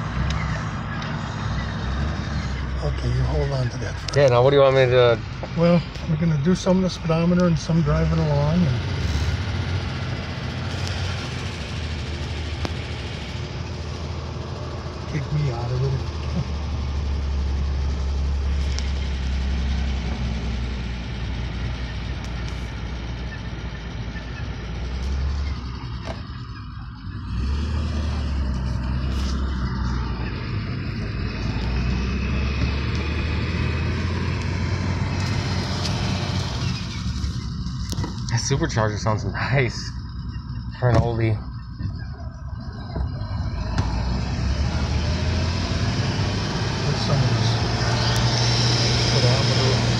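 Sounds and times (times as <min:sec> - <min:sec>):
car engine from inside cabin: 0:00.0 - 0:49.9
road noise: 0:00.0 - 0:49.9.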